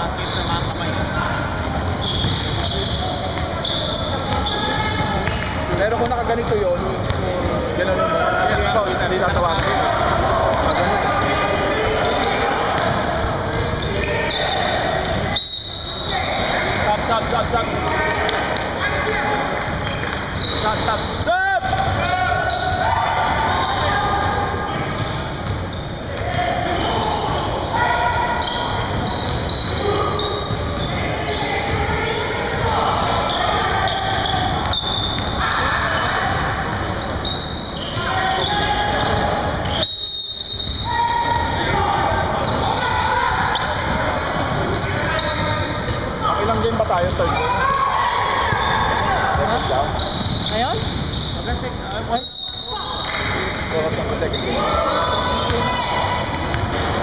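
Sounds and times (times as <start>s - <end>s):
players talking and calling out: 0.0s - 57.0s
short gliding squeak: 0.2s - 4.8s, 24.6s - 26.0s, 33.2s - 40.8s, 48.5s - 51.6s.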